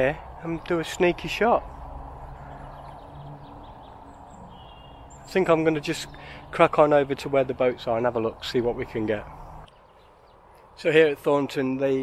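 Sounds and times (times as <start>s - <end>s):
faint high bird calls: 2.2s - 6.5s.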